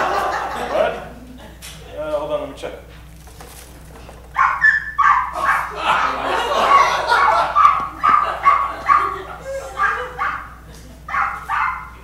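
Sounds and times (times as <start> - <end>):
small dog yipping: 4.3 - 5.7, 7.6 - 9.2, 9.8 - 12.0.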